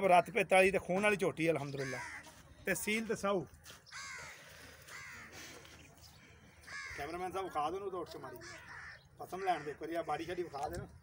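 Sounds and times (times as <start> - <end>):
crow cawing: 1.7 - 2.4, 3.9 - 5.6, 6.6 - 7.5, 8.3 - 10.8.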